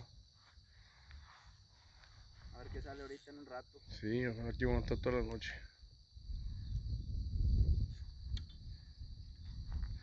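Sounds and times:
night insects chirring: 0.0s - 10.0s.

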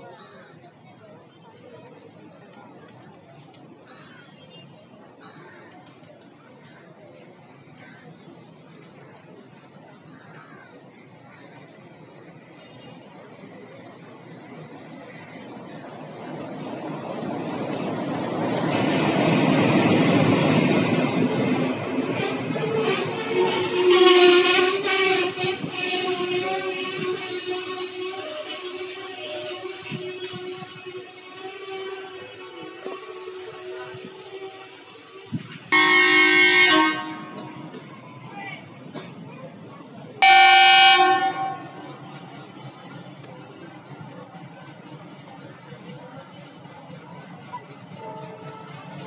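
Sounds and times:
train coaches rumbling past: 0.0s - 49.0s
diesel locomotive passing: 5.8s - 49.0s
hiss of wheels on rail: 13.0s - 49.0s
locomotive horn blast: 22.1s - 34.8s, 35.6s - 37.9s, 40.2s - 42.1s.

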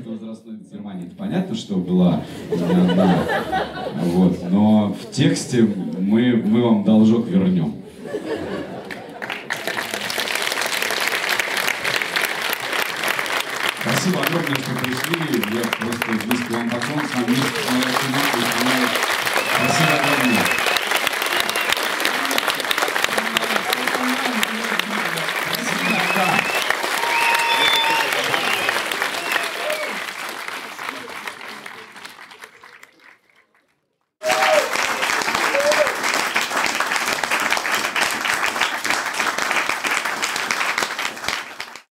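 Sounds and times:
audience applauding: 8.5s - 41.9s
voices calling out: 17.3s - 30.0s.

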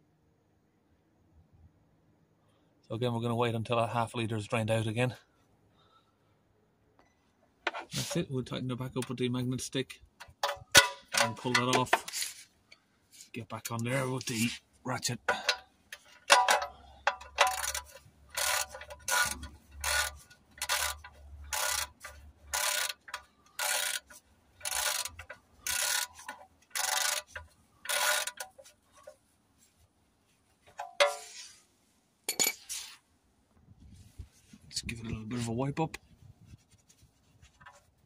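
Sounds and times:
handling sounds: 15.3s - 33.1s, 33.8s - 38.0s
ratchet wrench clicking: 15.4s - 28.7s.

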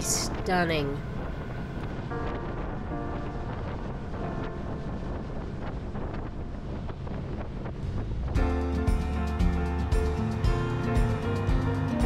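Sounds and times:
faint background music: 0.0s - 7.6s
wind on microphone: 0.0s - 12.0s.

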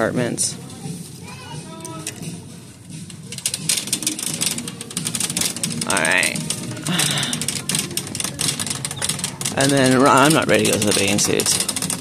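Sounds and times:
shopping cart rattling: 3.0s - 12.0s.

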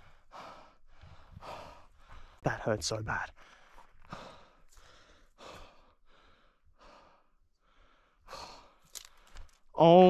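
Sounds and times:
man breathing in pain: 3.4s - 9.5s.

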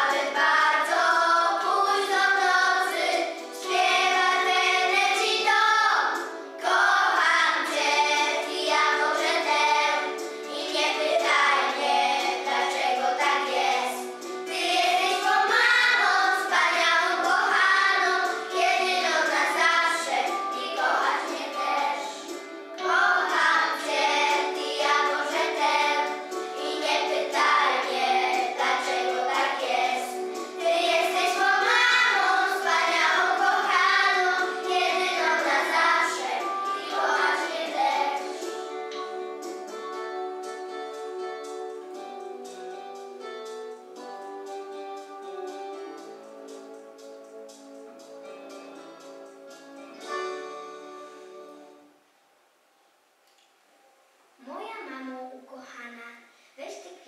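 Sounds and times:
children's choir singing: 0.0s - 43.1s.

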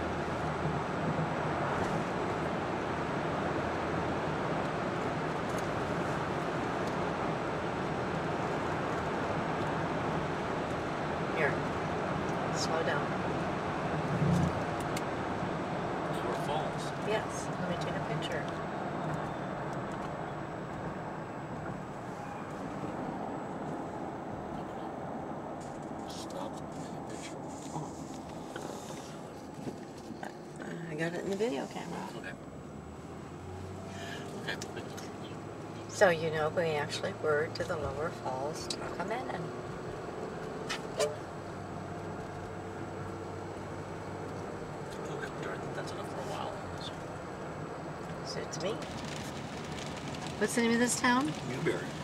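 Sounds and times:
car road noise inside cabin: 0.0s - 52.0s.

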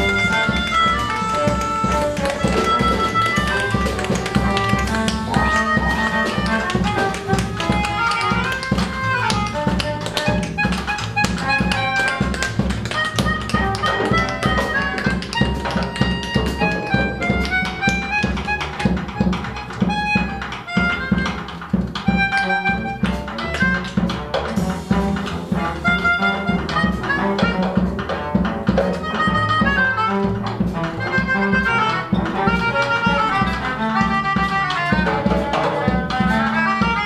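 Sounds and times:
reedy melodica: 0.0s - 23.9s, 25.7s - 28.0s, 28.8s - 37.0s
bowed cello: 0.0s - 37.0s
double bass: 0.0s - 37.0s
quick tapping percussion: 0.0s - 37.0s.

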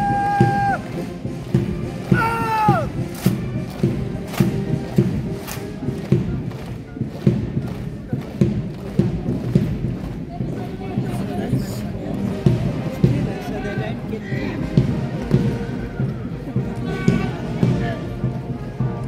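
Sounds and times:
boots marching on road: 0.0s - 19.0s
military band music: 0.0s - 19.0s
shouted word of command: 2.0s - 2.9s, 16.8s - 18.1s.

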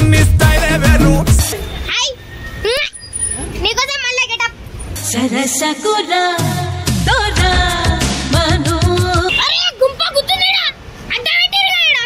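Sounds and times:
city road traffic rumble: 0.0s - 5.8s, 6.6s - 12.0s.

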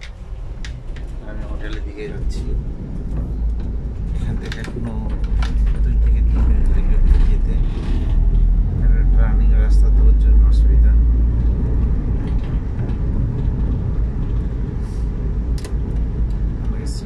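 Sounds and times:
vehicle rumble: 0.0s - 17.0s
indistinct voices: 4.1s - 8.2s.

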